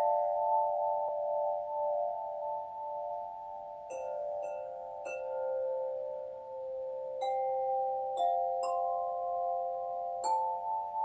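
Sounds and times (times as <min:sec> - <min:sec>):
chime tubes struck with mallet: 0:00.0 - 0:11.0.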